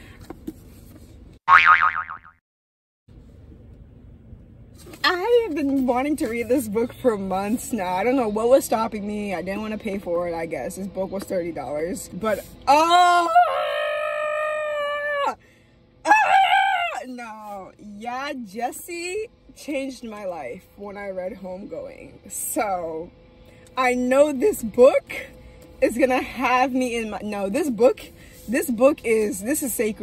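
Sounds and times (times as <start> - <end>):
cartoon boing: 1.5 - 2.4.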